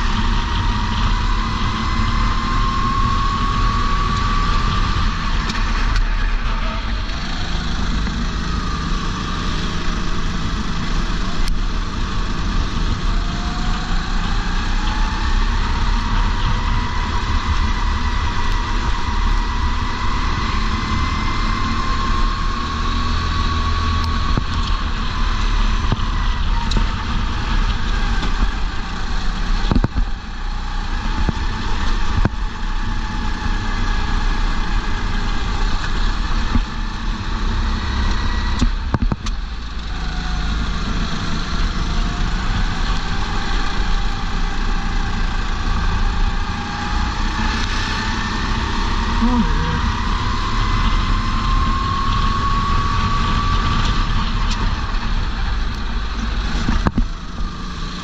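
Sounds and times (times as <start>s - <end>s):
kart engine running hard: 0.0s - 58.0s
wind noise: 0.0s - 58.0s.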